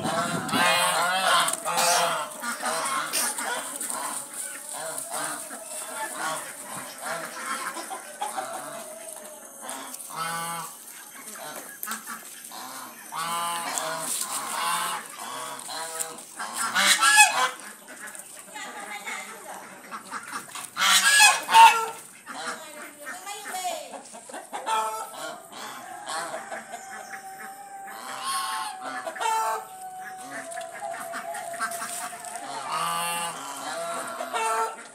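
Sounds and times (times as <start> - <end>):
geese honking: 0.0 - 23.8, 24.5 - 34.9.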